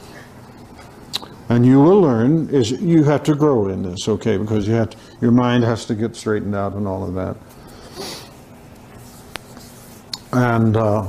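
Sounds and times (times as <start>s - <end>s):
faint rustling and scratching: 5.5s - 11.0s.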